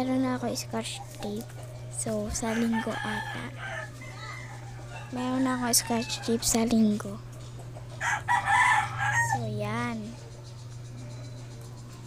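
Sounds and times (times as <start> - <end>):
steady low hum: 0.0 - 12.0
rooster crowing: 2.4 - 6.6, 8.0 - 9.5.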